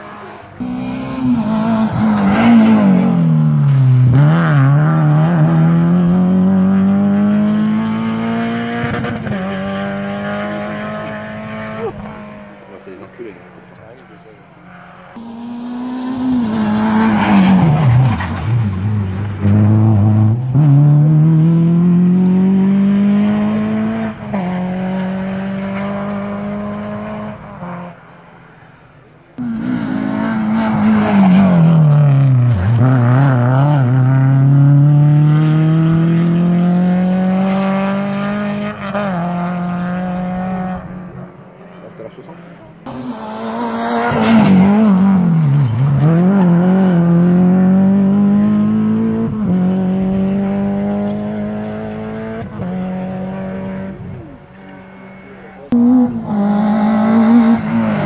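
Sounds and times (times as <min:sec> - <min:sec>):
rally cars passing at speed: 0:00.0 - 0:58.0.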